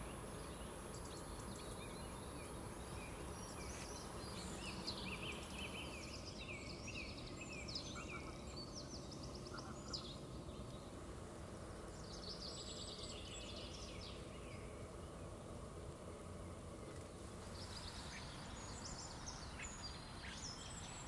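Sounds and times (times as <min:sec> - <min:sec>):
faint outdoor hiss: 0:00.0 - 0:21.0
songbirds chirping: 0:00.0 - 0:21.0.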